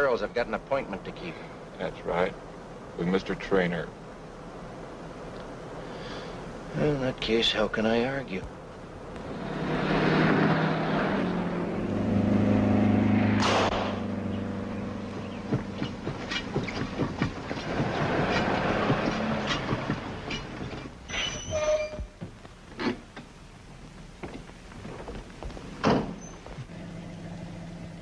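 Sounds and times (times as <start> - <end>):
car engine drone and tyre noise: 0.0 - 21.4, 22.0 - 28.0.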